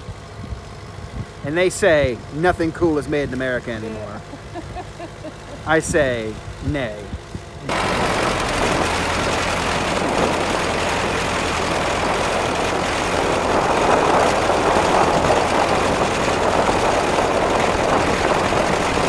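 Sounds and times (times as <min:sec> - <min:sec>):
tractor engine running: 0:00.0 - 0:19.0
water splashing and rushing: 0:07.7 - 0:19.0.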